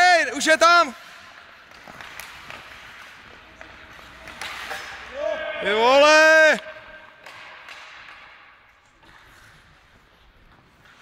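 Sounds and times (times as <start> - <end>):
skate blades scraping ice: 0.4 - 11.0.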